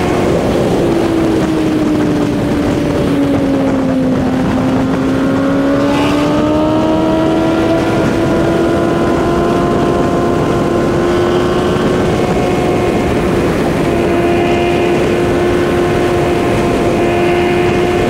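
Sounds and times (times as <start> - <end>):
motorcycle engine running: 0.0 - 18.0
wind and road noise: 0.0 - 18.0.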